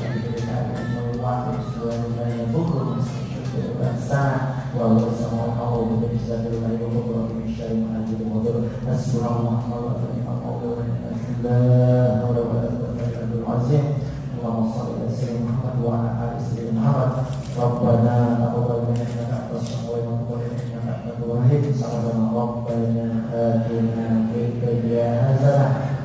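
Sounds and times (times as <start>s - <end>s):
man chanting into a microphone: 0.0s - 26.0s.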